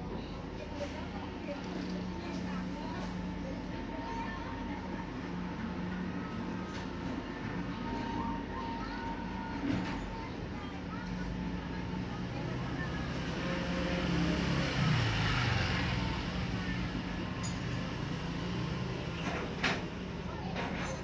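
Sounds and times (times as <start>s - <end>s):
low background hum: 0.0s - 14.0s
faint distant voices: 0.0s - 21.0s.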